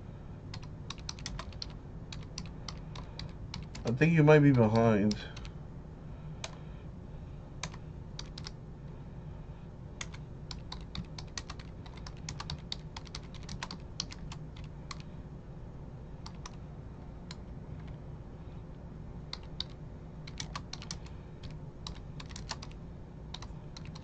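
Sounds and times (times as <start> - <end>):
low steady hum: 0.0 - 24.0
keyboard typing clicks: 0.5 - 3.9, 7.6 - 8.6, 10.0 - 15.1, 16.2 - 16.6, 19.3 - 24.0.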